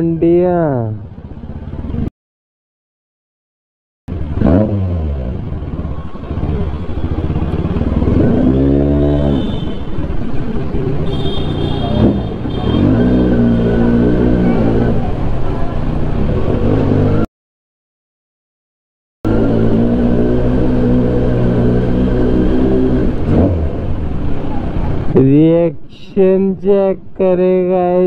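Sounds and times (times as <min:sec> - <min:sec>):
motorcycle engine revving: 0:04.1 - 0:17.3, 0:19.3 - 0:25.2.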